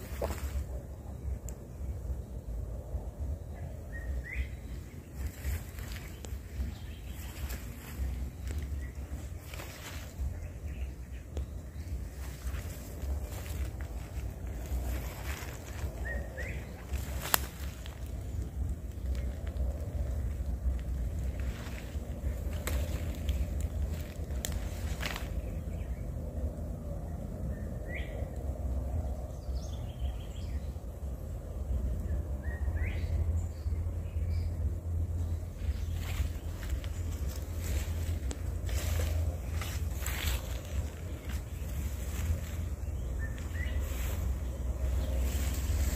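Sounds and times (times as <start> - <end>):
rustling: 0.0 - 0.8, 5.1 - 10.7, 11.7 - 25.6, 35.4 - 45.9
low rumble of wind: 0.0 - 45.9.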